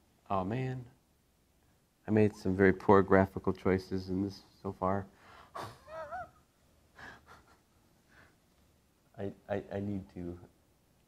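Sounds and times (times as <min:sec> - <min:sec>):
man's stifled laugh: 0:05.6 - 0:06.4, 0:07.0 - 0:07.7.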